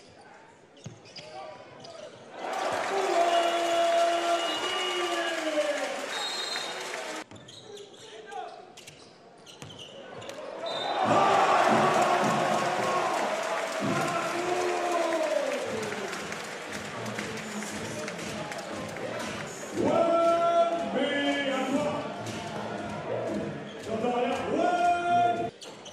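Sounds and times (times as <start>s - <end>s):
crowd noise: 2.1s - 7.4s, 10.0s - 25.5s.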